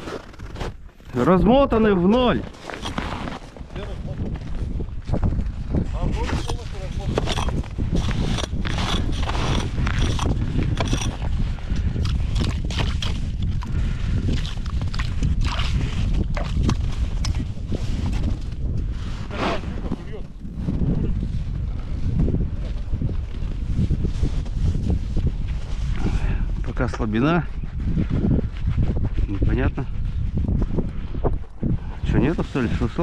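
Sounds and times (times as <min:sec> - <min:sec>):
crunches and clicks in snow: 0:00.0 - 0:33.0
wind buffeting microphone: 0:00.0 - 0:33.0.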